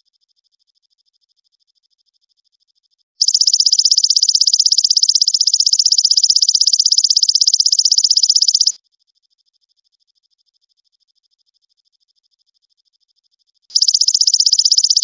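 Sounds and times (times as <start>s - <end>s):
faint higher insect trill: 0.0s - 15.0s
insect loud high trill: 3.2s - 8.8s, 13.7s - 15.0s.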